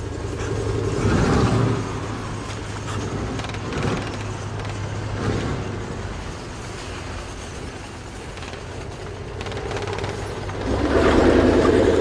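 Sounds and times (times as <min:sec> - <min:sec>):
low engine-like rumble: 0:00.0 - 0:12.0.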